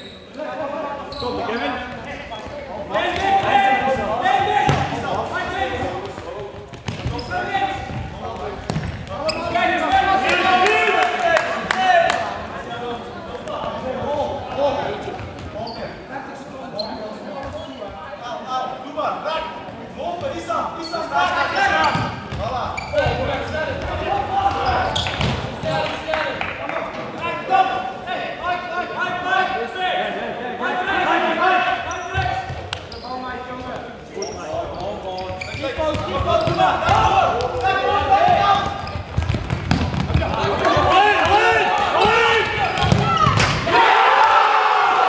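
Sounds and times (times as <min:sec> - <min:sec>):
players calling out: 0:34.1 - 0:45.0.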